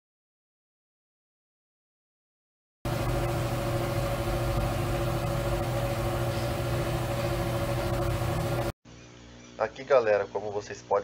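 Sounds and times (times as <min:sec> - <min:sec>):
machine running with low hum: 0:02.9 - 0:09.5.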